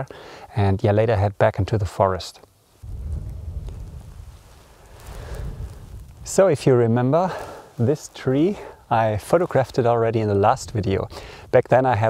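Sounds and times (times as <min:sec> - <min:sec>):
wind buffeting microphone: 0:02.8 - 0:06.8, 0:09.7 - 0:11.6.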